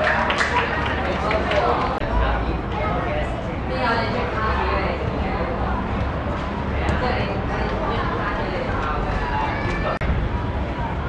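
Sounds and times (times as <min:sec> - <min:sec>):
voices calling out and talking: 0:00.0 - 0:11.0.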